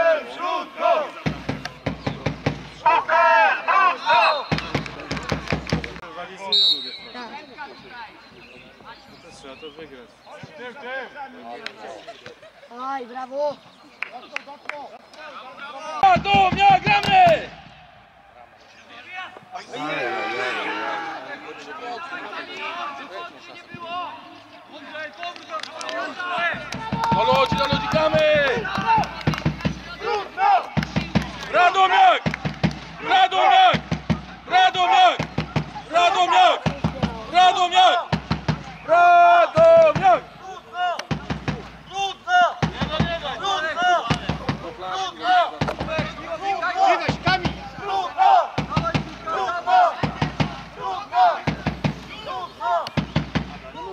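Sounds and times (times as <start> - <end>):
people shouting: 0.0 - 1.8, 2.8 - 5.7, 15.8 - 18.4, 19.0 - 23.2, 25.8 - 53.9.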